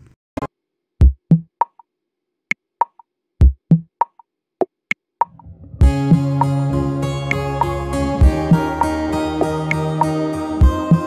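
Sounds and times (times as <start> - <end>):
drum machine beat: 1.0 - 1.8, 2.8 - 4.2.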